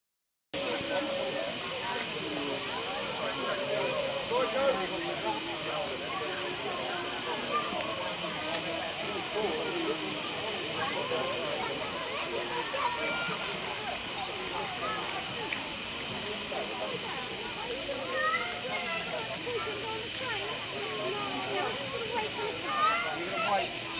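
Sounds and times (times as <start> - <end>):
crowd chatter: 0.6 - 23.9
steam hissing from locomotive: 0.6 - 23.9.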